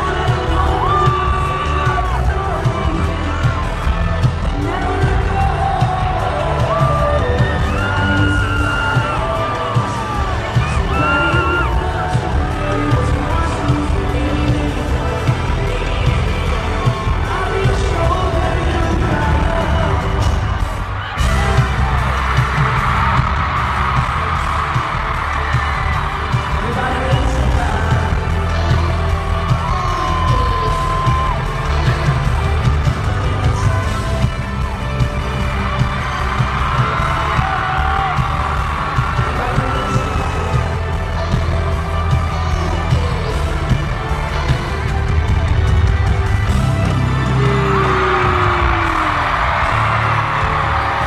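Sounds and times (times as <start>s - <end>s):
person singing: 0.0s - 23.2s, 25.0s - 45.7s, 46.5s - 51.0s
pounding bass beat: 0.0s - 51.0s.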